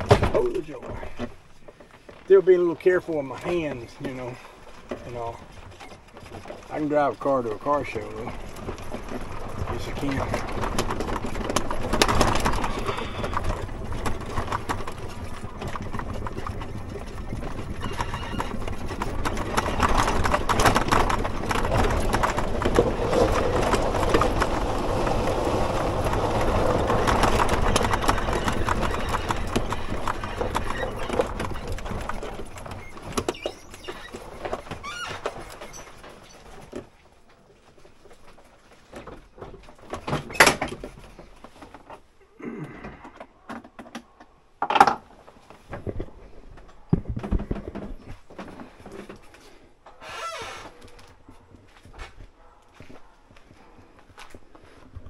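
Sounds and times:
utility vehicle rattling: 0:00.0 - 0:37.0.

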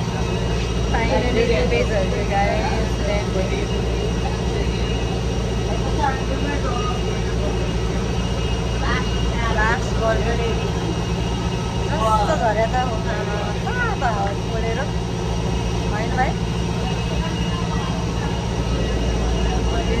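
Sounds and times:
bus engine drone from inside: 0:00.0 - 0:20.0
faint passenger voices: 0:00.0 - 0:20.0.

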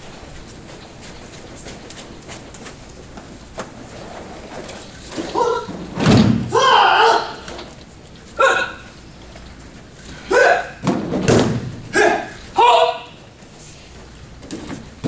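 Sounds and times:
body thudding on gym mat: 0:05.9 - 0:06.6, 0:10.8 - 0:11.9
short sharp shouts: 0:08.4 - 0:08.9, 0:10.2 - 0:10.8, 0:11.9 - 0:13.2.

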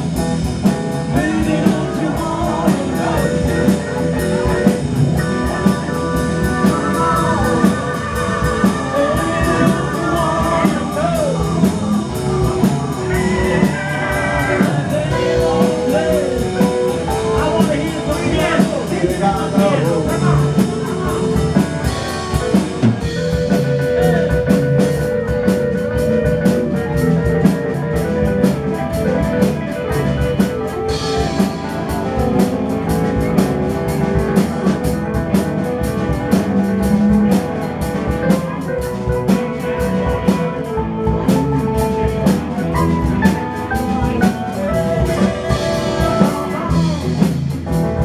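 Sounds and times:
drum kit beat: 0:00.0 - 0:48.0
electric and acoustic guitars: 0:00.0 - 0:48.0
keyboard: 0:00.0 - 0:48.0.

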